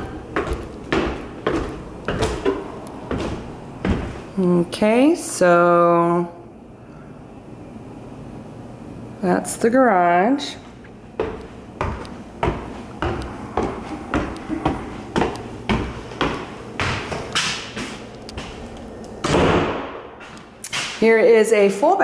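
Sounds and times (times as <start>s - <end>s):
footsteps on stairs: 0.0s - 4.5s, 10.7s - 21.1s.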